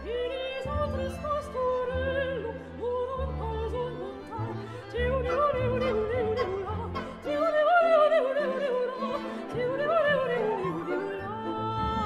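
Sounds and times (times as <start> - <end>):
chamber ensemble accompaniment: 0.0 - 12.0
soprano singing with vibrato: 0.0 - 12.0.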